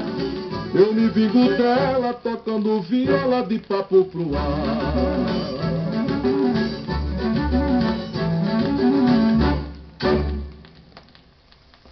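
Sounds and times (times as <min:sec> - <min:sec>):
record surface crackle: 0:00.0 - 0:11.9
orchestra with strings and guitar: 0:04.3 - 0:10.8.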